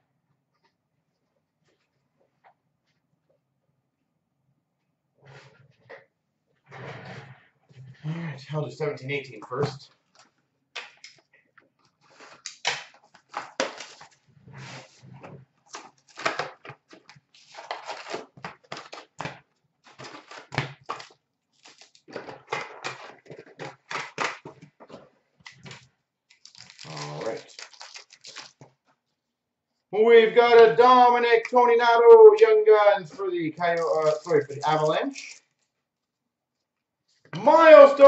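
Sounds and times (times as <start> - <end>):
card packs rustling and crinkling: 12.0 - 15.0, 15.6 - 28.8, 33.6 - 35.6.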